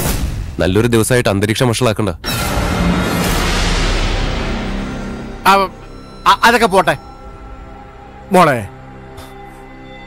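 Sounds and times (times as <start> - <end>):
loud boom-like hit: 2.2 - 6.0.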